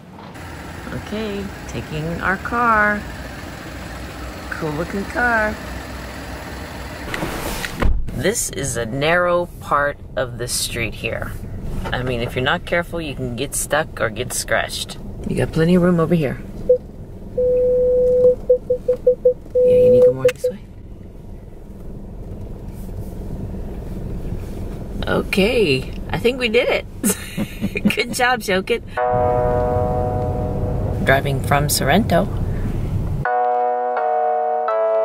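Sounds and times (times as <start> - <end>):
car engine idling: 0.0 - 7.4, 9.2 - 17.4, 18.4 - 33.3
low thump: 7.1 - 8.2
parking sensor beeping: 16.7 - 20.6.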